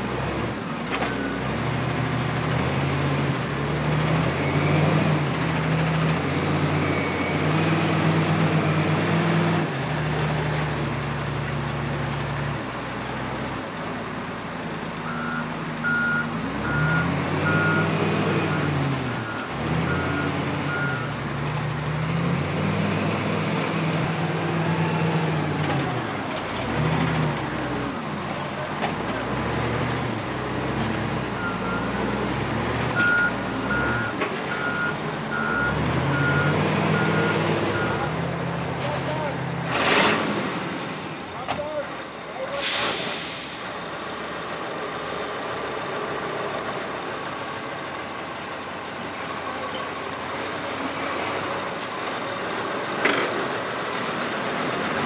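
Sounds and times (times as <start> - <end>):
reversing alarm beeping: 15.1 - 21.2
machinery engine revving: 28.9 - 41.1
air brake hiss: 42.5 - 44.0.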